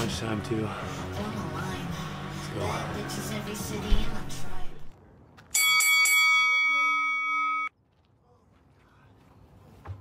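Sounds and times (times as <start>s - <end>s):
timer bell ringing: 5.6s - 7.7s.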